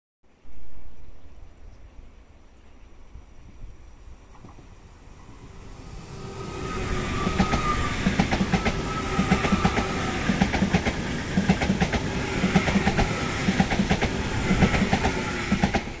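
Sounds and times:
train rolling rumble: 0:03.4 - 0:16.0
train wheels clicking over rail joints: 0:07.2 - 0:16.0.

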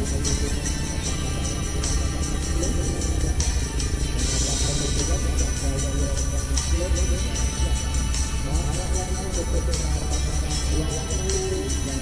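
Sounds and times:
background music with repeating beat: 0:00.0 - 0:12.0.

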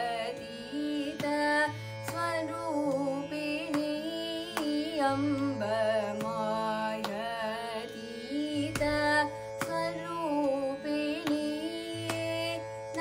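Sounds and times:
girl singing: 0:00.0 - 0:13.0.

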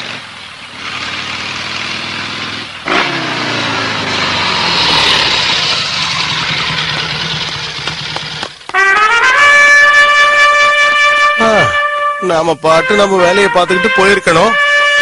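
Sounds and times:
motorcycle engine riding: 0:00.0 - 0:08.9.

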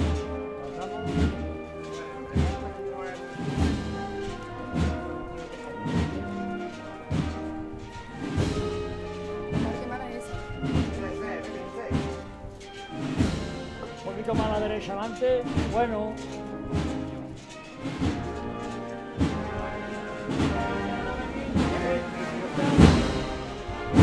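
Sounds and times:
wind band playing a march: 0:00.0 - 0:24.0
bass drum beats: 0:02.3 - 0:17.3.

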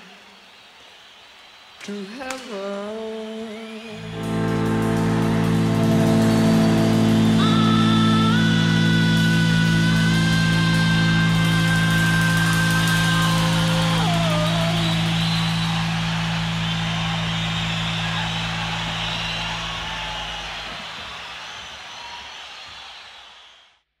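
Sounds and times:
electric guitar chord ringing: 0:04.0 - 0:19.8.

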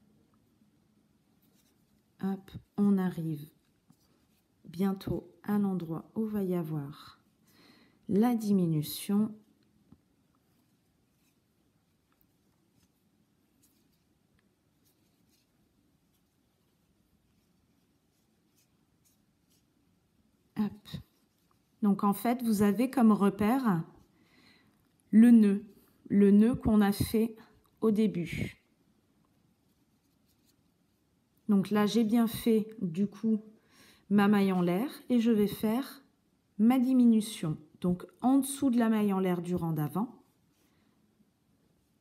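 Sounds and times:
yarn rustling through stitches: 0:00.0 - 0:24.1, 0:29.3 - 0:33.3, 0:34.1 - 0:36.0.

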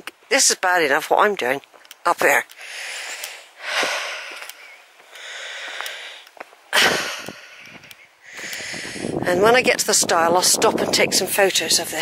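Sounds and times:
man breathing hard: 0:02.6 - 0:09.2.

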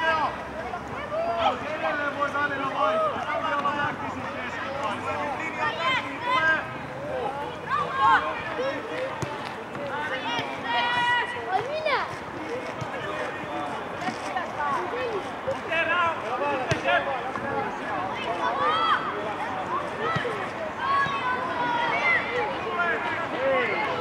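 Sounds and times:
spectators shouting: 0:19.9 - 0:24.0
children shouting: 0:20.0 - 0:22.7.

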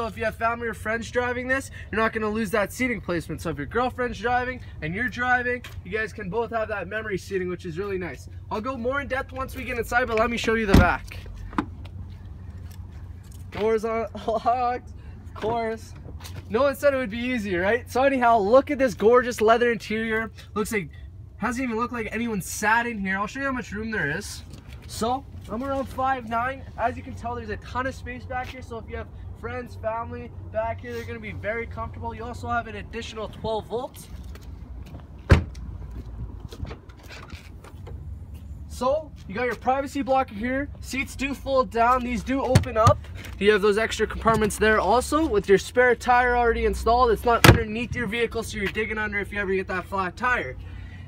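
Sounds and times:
car door slamming shut: 0:10.7 - 0:11.0, 0:35.3 - 0:35.6, 0:47.4 - 0:47.7.

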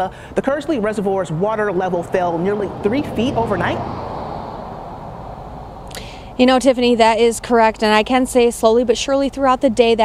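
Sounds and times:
outdoor background noise: 0:00.0 - 0:10.0
intake of breath: 0:00.1 - 0:00.4, 0:05.8 - 0:06.4.

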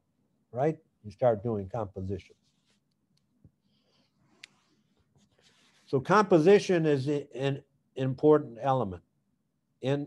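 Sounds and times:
man speaking: 0:00.5 - 0:02.4, 0:05.9 - 0:09.0.

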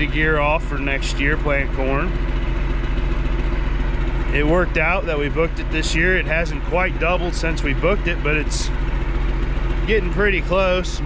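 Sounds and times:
tractor diesel engine idling: 0:00.0 - 0:11.0.

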